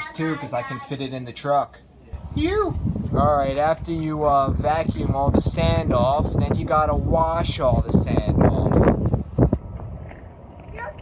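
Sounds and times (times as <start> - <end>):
wind rumbling on microphone: 2.2 - 11.0.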